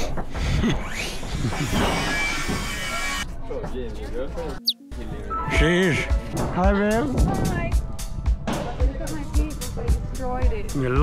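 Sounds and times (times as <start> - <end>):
background music: 4.6 - 11.0.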